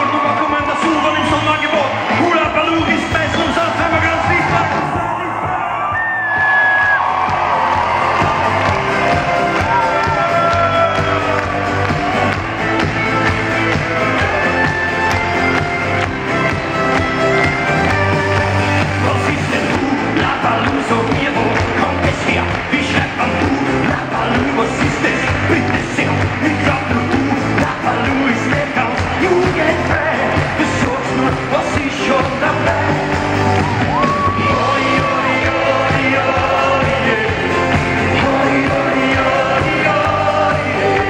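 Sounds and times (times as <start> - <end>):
crowd voices: 0.0 - 41.0
person singing: 17.9 - 41.0.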